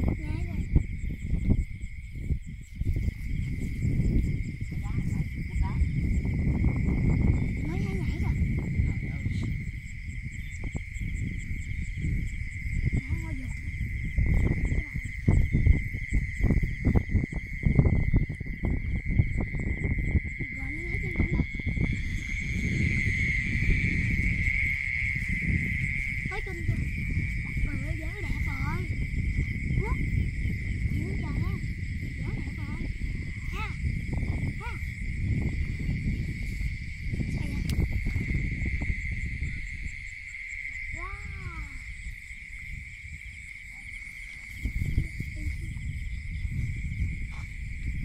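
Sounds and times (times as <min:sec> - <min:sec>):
night insects chirring: 0:00.0 - 0:48.0.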